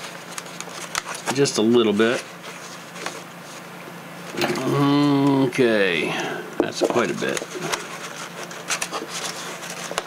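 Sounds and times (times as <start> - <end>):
man humming: 4.4 - 6.5.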